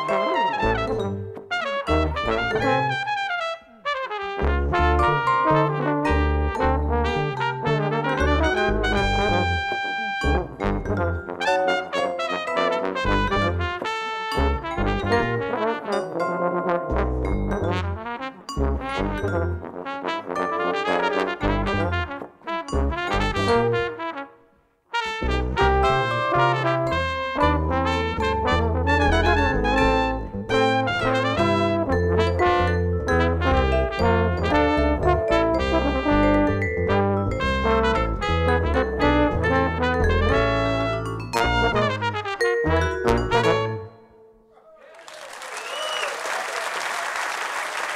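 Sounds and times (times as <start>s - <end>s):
vibraphone: 0.0s - 2.8s, 5.0s - 13.8s, 14.4s - 19.7s, 22.7s - 23.9s, 31.6s - 44.3s
bass guitar: 0.0s - 3.1s, 4.4s - 11.4s, 13.0s - 15.5s, 16.9s - 18.0s, 18.6s - 19.6s, 21.4s - 22.2s, 22.8s - 23.9s, 25.2s - 44.0s
trombone: 0.0s - 44.0s
trumpet: 0.0s - 44.2s.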